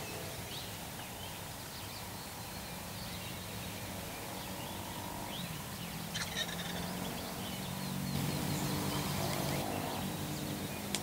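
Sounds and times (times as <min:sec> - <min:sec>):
songbirds chirping: 0:00.0 - 0:11.0
turkey gobbling: 0:06.2 - 0:06.8.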